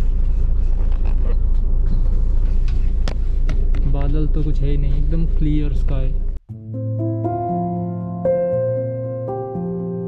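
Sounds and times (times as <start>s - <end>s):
bus engine and road rumble: 0.0s - 6.4s.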